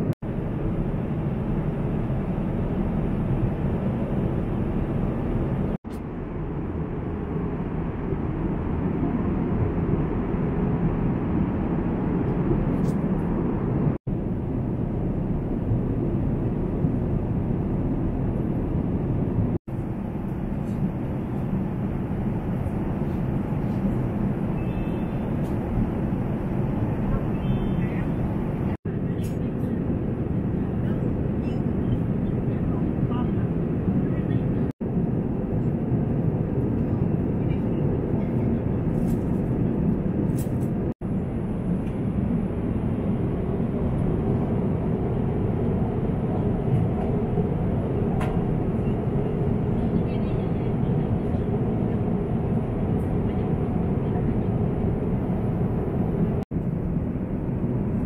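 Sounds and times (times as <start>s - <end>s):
airliner cabin engine rush: 0.0s - 58.0s.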